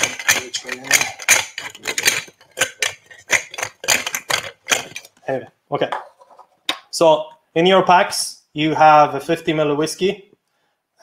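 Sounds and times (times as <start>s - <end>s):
spoon stirring ice in glass: 0.0s - 5.1s.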